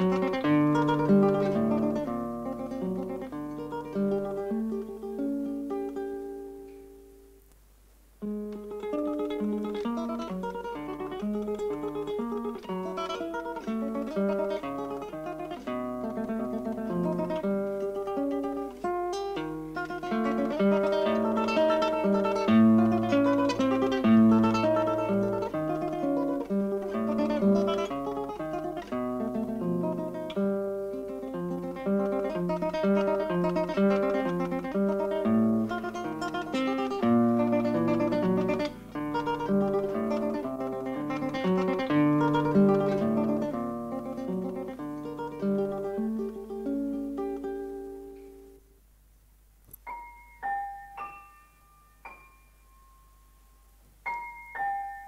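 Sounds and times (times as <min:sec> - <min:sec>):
acoustic guitar plucking: 0:00.0 - 0:07.4, 0:08.2 - 0:48.7.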